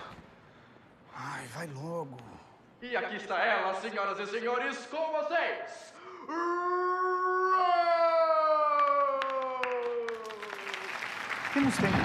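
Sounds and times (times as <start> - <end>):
sharp hand claps: 8.8 - 12.0.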